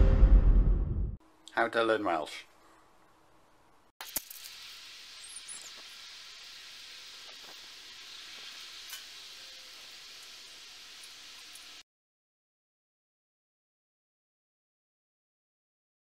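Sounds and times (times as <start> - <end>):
burning match sizzling hiss: 4.0 - 11.8.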